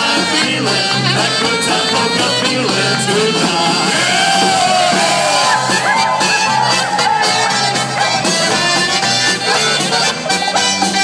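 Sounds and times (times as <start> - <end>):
live polka band: 0.0 - 11.0
audience whooping and yelling: 3.8 - 9.7.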